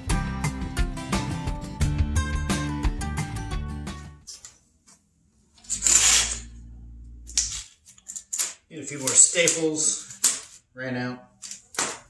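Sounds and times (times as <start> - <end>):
wire mesh lid scraping rustle: 5.6 - 6.6.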